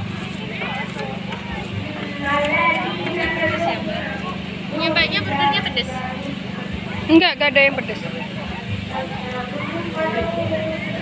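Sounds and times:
low mechanical hum: 0:00.0 - 0:11.0
people talking: 0:00.0 - 0:11.0.

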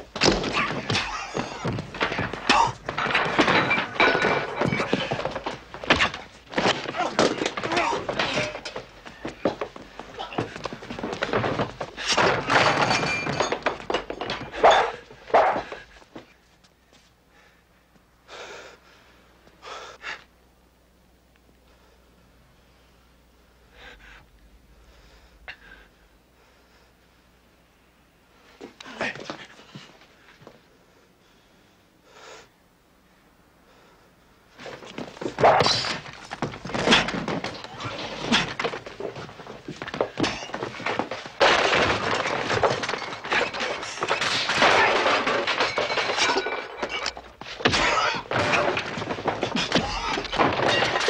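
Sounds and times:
thuds and knocks of fistfight: 0:00.0 - 0:14.5, 0:34.8 - 0:45.8.

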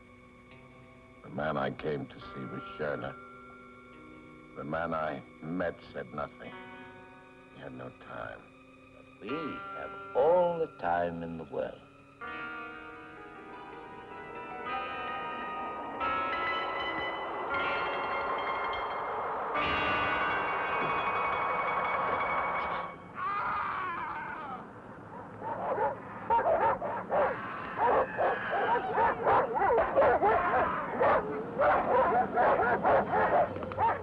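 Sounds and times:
film score chords: 0:00.0 - 0:23.2
dogs barking: 0:24.9 - 0:34.0.

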